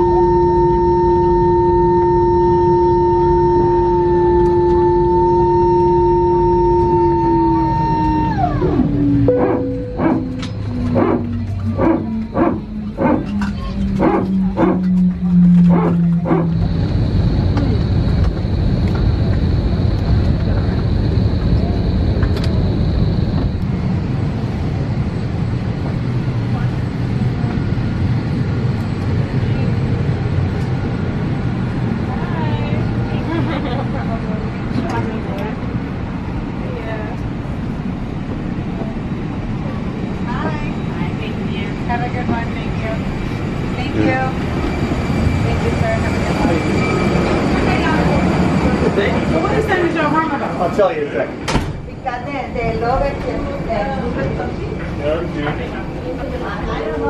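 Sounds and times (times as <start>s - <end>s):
thin high whine: 0.0s - 23.7s
aircraft cabin ventilation noise: 0.0s - 44.0s
passengers talking: 0.0s - 57.0s.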